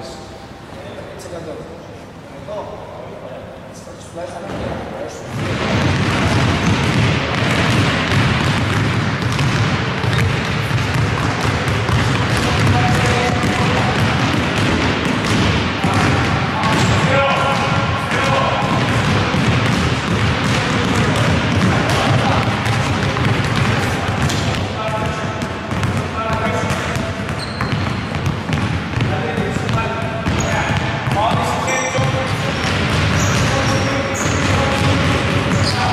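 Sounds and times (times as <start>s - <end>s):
basketballs bouncing on hardwood: 5.3s - 35.9s.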